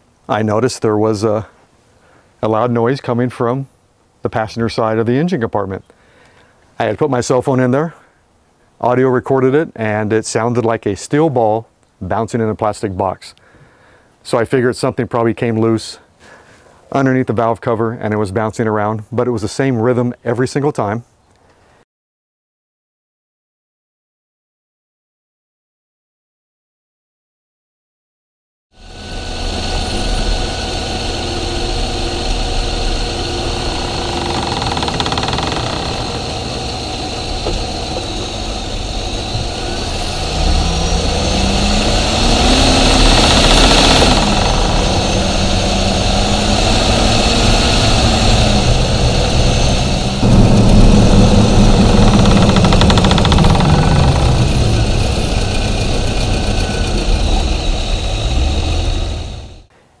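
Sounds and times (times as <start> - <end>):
rhythmic knocking rattle: 28.9 - 59.4
truck engine running: 28.9 - 59.7.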